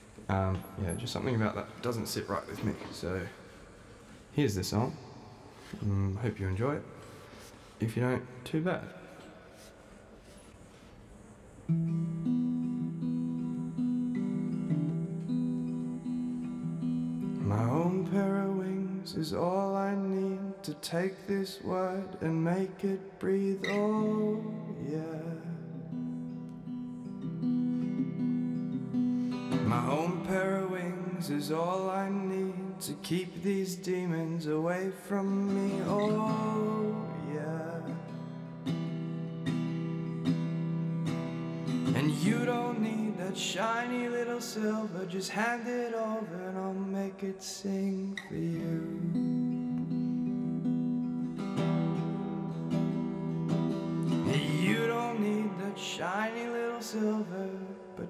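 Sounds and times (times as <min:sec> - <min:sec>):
acoustic guitar strummed chords: 0:11.6 - 0:58.0.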